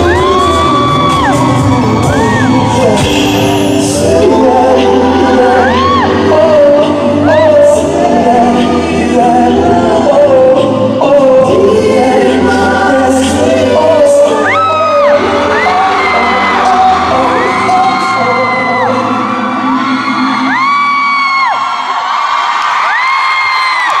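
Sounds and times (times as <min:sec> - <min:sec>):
high-pitched screams: 0:00.0 - 0:06.3, 0:14.3 - 0:24.0
audience screaming and cheering: 0:00.0 - 0:10.8, 0:12.5 - 0:24.0
live pop music: 0:00.0 - 0:24.0.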